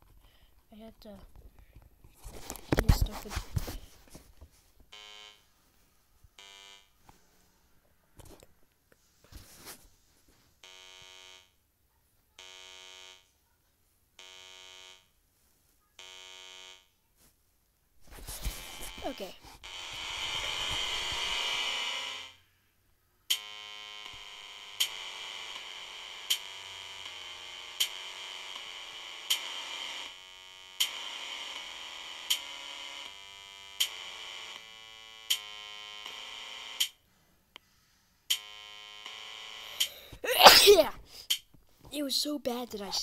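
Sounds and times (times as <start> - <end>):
simple electronic tune: 18.7 - 22.4.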